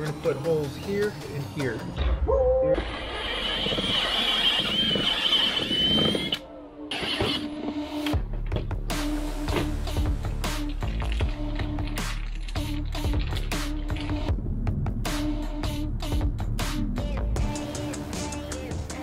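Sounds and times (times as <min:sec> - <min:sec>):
background music with beat: 0:00.0 - 0:02.8, 0:06.0 - 0:19.0
drill whining through plastic: 0:02.8 - 0:07.5.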